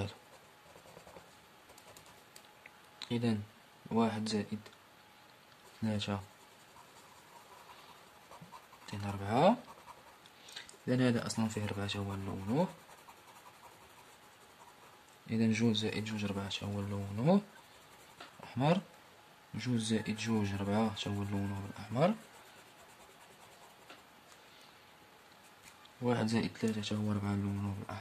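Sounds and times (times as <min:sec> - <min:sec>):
pencil scratching on paper: 0:00.0 - 0:02.2, 0:05.6 - 0:10.2, 0:10.8 - 0:18.5, 0:20.0 - 0:24.1, 0:26.5 - 0:28.0.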